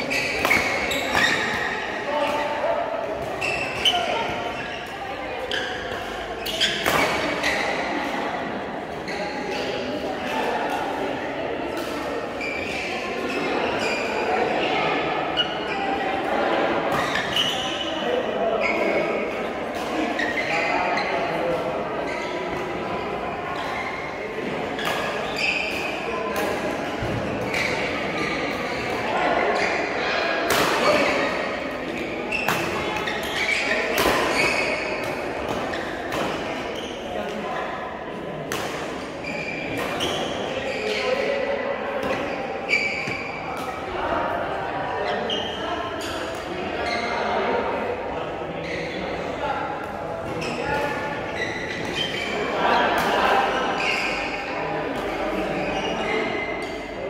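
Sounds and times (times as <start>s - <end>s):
rackets hitting shuttlecock: 30.4s - 37.4s.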